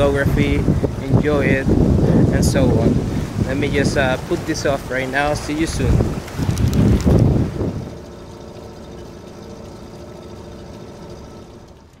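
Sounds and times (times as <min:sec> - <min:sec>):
wind buffeting microphone: 0:00.0 - 0:10.0
steady hum with held tones: 0:00.0 - 0:12.0.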